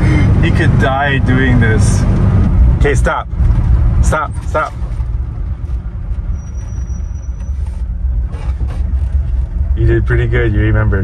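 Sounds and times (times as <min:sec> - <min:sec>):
pickup engine rumble inside cab: 0:00.0 - 0:11.0.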